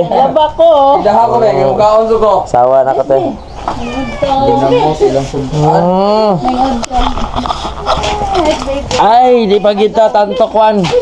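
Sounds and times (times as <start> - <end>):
voices calling: 0.0 - 11.0.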